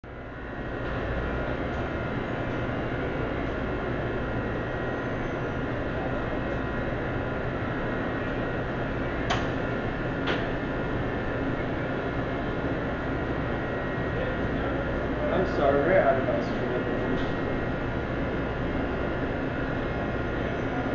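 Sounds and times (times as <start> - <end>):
ventilation hum and hiss: 0.0 - 20.9.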